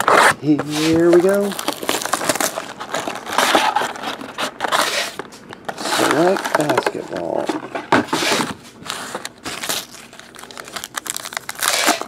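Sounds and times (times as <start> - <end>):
foil packs rustling: 0.0 - 12.0.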